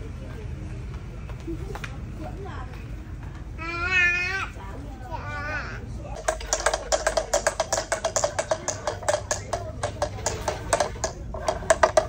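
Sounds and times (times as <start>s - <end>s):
sharp clicks and taps on hard object: 6.2s - 12.0s.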